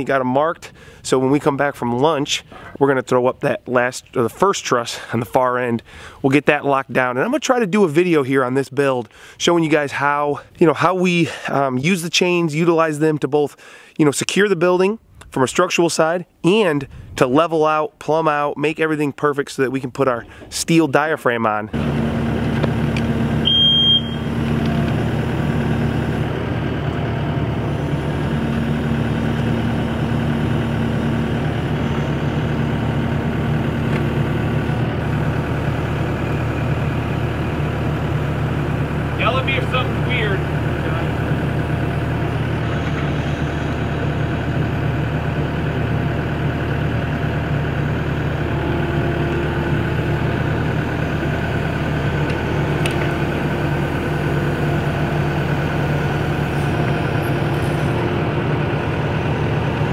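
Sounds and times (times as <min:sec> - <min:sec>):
diesel engine running under load: 0:00.0 - 0:01.1, 0:04.8 - 0:06.2, 0:20.2 - 0:20.5, 0:21.7 - 0:59.9.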